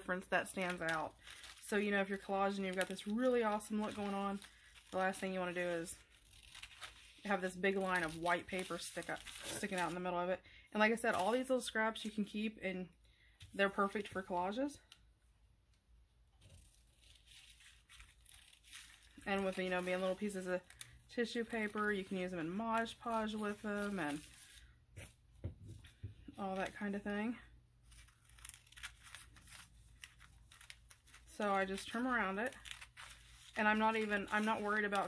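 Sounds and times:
tissue paper rustling: 0.0s - 10.2s, 16.4s - 25.2s, 27.8s - 35.0s.

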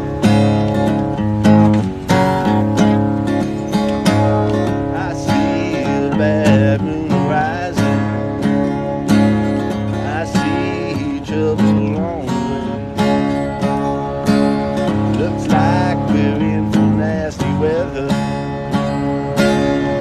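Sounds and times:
acoustic guitar blues riff: 0.0s - 20.0s
man singing: 4.6s - 8.6s, 9.8s - 13.2s, 15.0s - 19.0s.

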